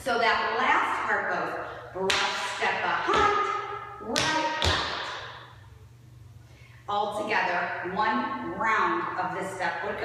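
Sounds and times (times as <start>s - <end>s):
woman speaking: 0.0s - 5.1s, 6.9s - 10.0s
faint low hum: 0.0s - 10.0s.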